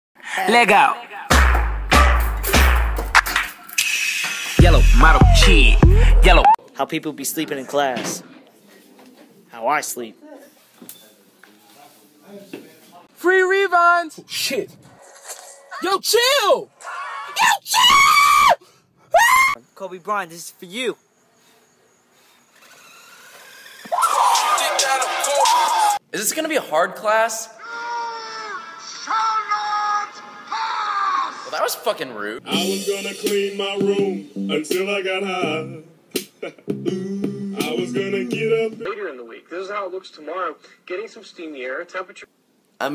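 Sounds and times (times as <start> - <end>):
deep bass with drum hits: 1.3 - 3.4, 4.6 - 6.4
toy car motor and wheels: 22.5 - 24.1.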